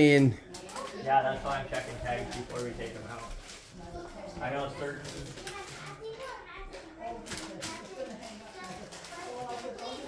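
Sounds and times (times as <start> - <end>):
background chatter of voices: 0.0 - 10.0
child talking: 5.4 - 10.0.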